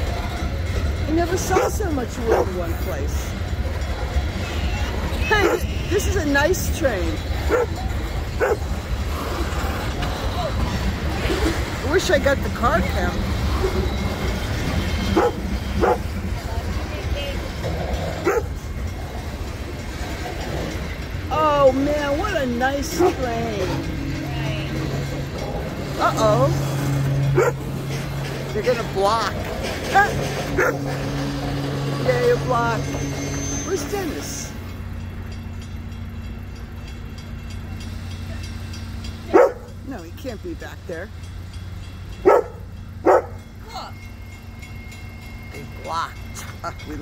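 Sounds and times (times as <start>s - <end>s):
freight train rumbling past: 0.0s - 47.0s
train wheel clicks: 0.0s - 47.0s
dog barking: 1.6s - 2.6s, 5.4s - 5.7s, 7.5s - 7.8s, 8.4s - 8.6s, 15.2s - 16.1s, 18.2s - 18.5s, 27.4s - 27.6s, 30.6s - 30.8s, 39.3s - 39.7s, 42.2s - 43.4s.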